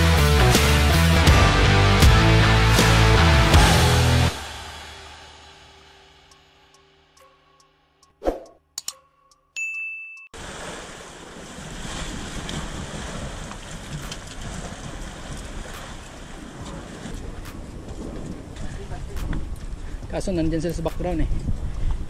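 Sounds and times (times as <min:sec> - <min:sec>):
short high ding tone: 0:09.0 - 0:10.4
surf against rocky shore: 0:10.4 - 0:21.2
wind on microphone: 0:14.0 - 0:22.0.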